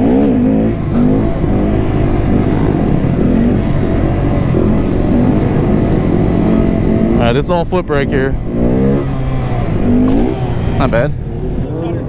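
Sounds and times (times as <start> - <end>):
motorcycle engine revving: 0.0 - 12.0.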